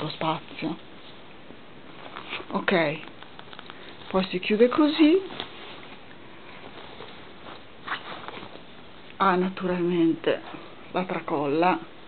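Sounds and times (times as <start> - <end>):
fabric bag rustling: 0.0 - 9.1.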